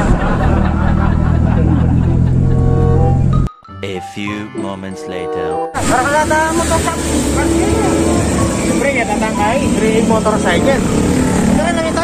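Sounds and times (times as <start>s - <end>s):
vehicle traffic rumble: 0.0s - 3.5s, 5.7s - 12.0s
people talking: 3.8s - 10.8s.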